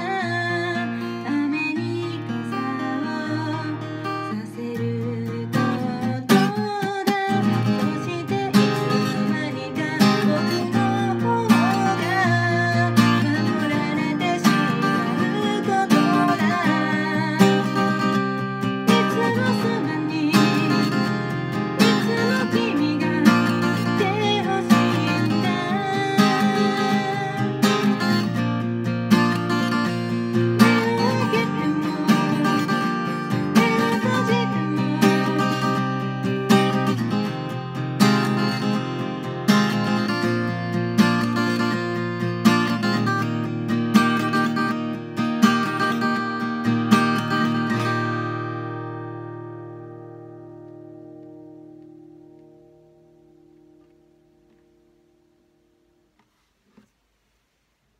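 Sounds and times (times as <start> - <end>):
acoustic guitar strumming: 0.0 - 56.2.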